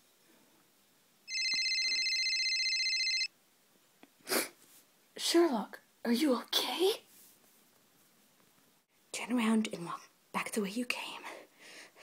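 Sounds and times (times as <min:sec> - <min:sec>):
phone ringing electronic trill: 0:01.3 - 0:03.3.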